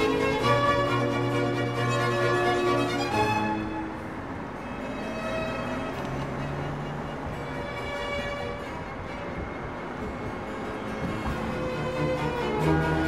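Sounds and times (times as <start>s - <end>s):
traffic road noise rushing: 0.0s - 13.0s.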